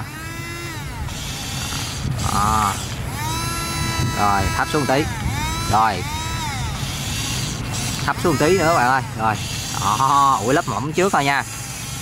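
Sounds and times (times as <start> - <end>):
toy bulldozer electric motor whining: 0.0 - 12.0
blade scraping through dirt: 1.0 - 12.0.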